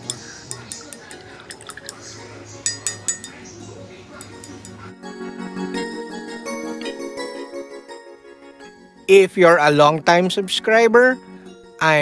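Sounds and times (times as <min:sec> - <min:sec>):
paintbrush clinking against mug: 0:00.0 - 0:04.9
soft background music: 0:00.0 - 0:12.0.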